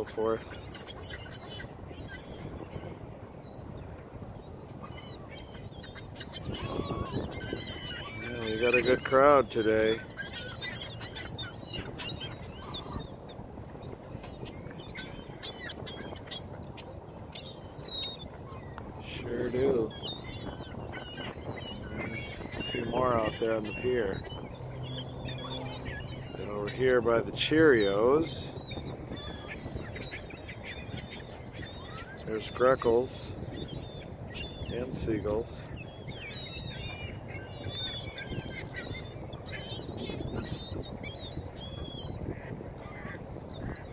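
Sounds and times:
gulls calling: 0.0s - 43.9s
low steady background rumble: 9.7s - 32.5s.

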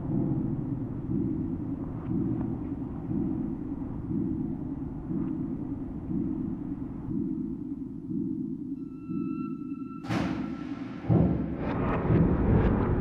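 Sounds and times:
low rumbling electronic drone: 0.0s - 13.0s.

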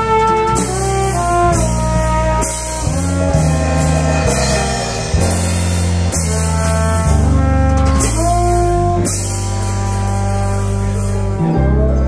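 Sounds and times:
bass: 0.0s - 12.0s
drums: 0.0s - 12.0s
piano: 0.0s - 12.0s
trombone melody: 0.0s - 12.0s.

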